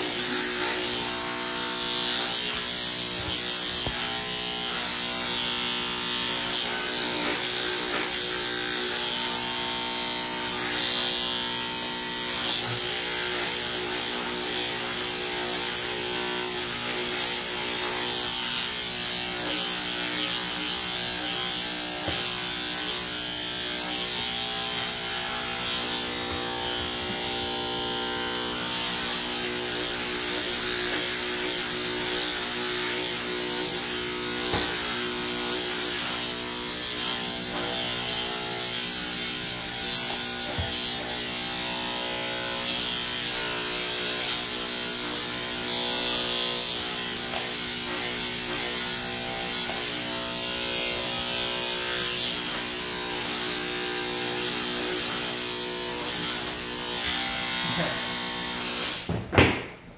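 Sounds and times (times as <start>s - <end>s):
electric clippers humming: 0.0s - 59.9s.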